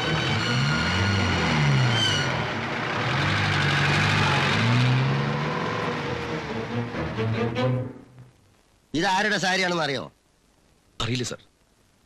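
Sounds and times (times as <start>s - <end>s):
engine revving: 0.0s - 7.6s
steady rush of noise: 2.3s - 12.0s.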